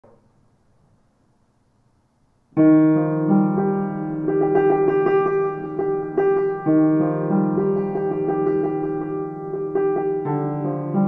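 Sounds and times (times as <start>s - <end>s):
acoustic piano playing: 2.6s - 11.0s.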